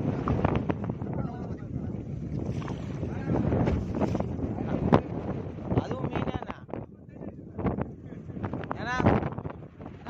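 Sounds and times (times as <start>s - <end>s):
boat engine rumble: 0.0s - 10.0s
wind buffeting microphone: 0.0s - 10.0s.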